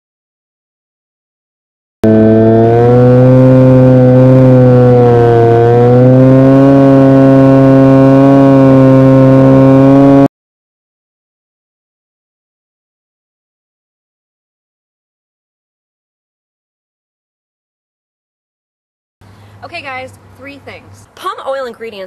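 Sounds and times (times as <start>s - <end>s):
drone propellers buzzing: 2.0s - 10.3s.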